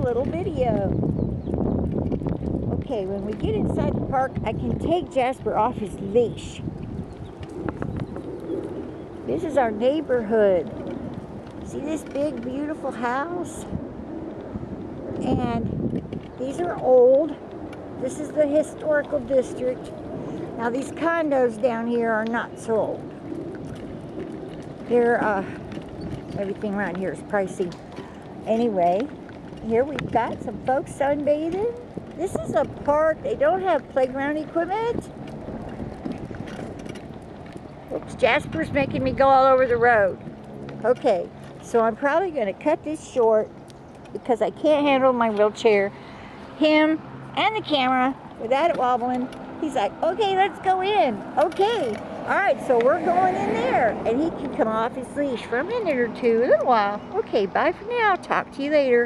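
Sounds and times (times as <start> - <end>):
low steady rumble: 0.0 - 59.0
wheelchair rolling on concrete: 0.0 - 59.0.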